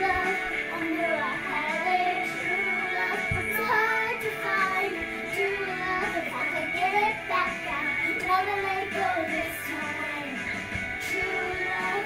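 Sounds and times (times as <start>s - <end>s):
girl singing along: 0.0s - 12.0s
pop song from karaoke machine: 0.0s - 12.0s.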